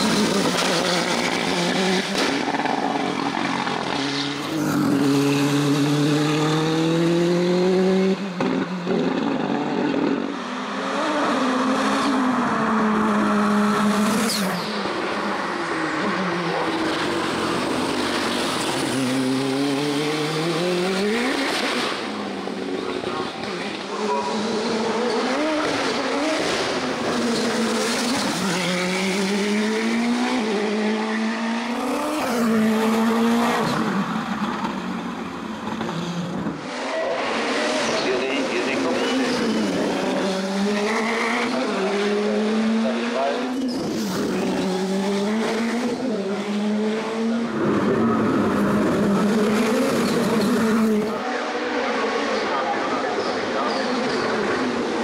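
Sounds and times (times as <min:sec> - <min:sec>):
race car engine at full throttle: 0:00.0 - 0:55.0.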